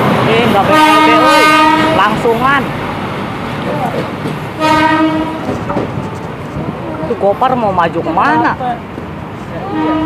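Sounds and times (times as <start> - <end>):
train running noise: 0.0 - 10.0
train horn blast: 0.7 - 2.1, 4.6 - 5.6, 9.6 - 10.0.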